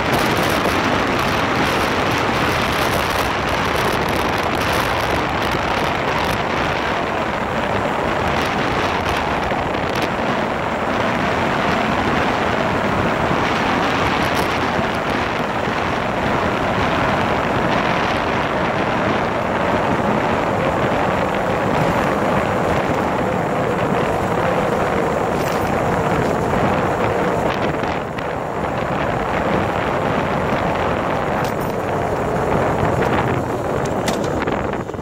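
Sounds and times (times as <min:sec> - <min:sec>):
motorcycle engine running: 0:00.0 - 0:35.0
wind rushing on microphone: 0:00.0 - 0:35.0.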